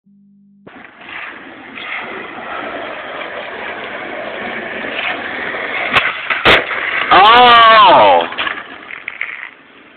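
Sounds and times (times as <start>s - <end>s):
skateboard wheels rolling on asphalt: 0.7s - 9.9s.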